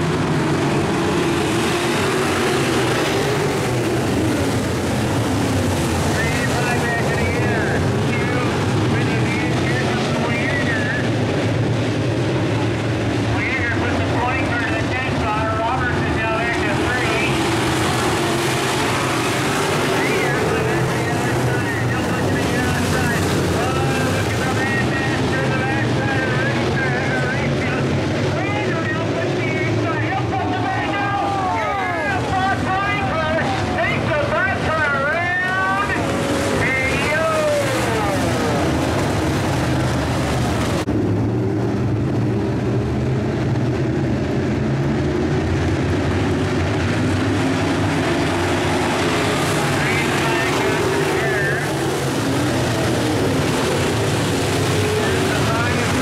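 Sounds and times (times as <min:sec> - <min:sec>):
race car engines revving: 0:00.0 - 0:56.0
steady engine drone: 0:00.0 - 0:56.0.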